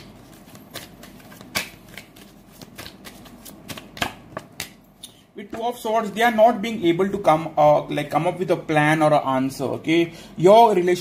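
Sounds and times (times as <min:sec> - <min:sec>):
cards being shuffled: 0:00.0 - 0:04.8.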